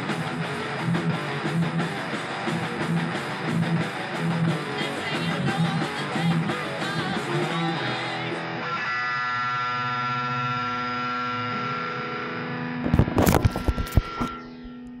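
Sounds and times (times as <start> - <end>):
distorted electric guitar: 0.0 - 15.0.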